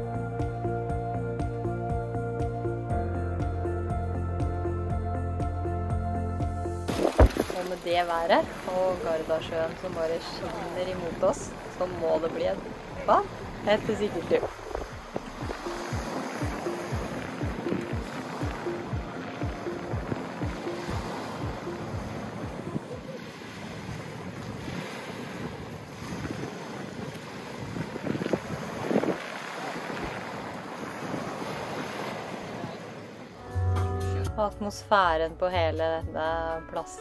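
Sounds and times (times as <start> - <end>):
wind on microphone: 6.9 - 32.8
waves washing onto pebbles: 6.9 - 33.1.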